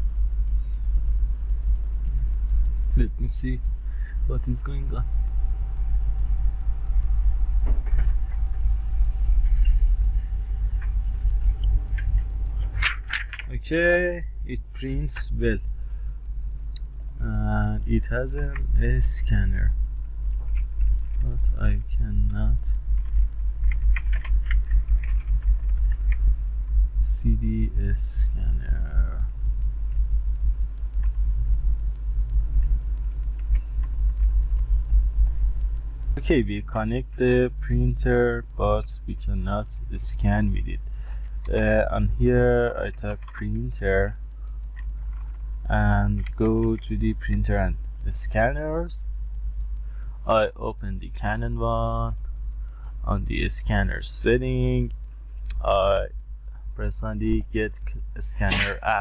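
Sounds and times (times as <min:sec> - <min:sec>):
laser printer whine: 0:00.0 - 0:54.9
faint clicks: 0:00.0 - 0:59.0
low rumble: 0:00.0 - 0:59.0.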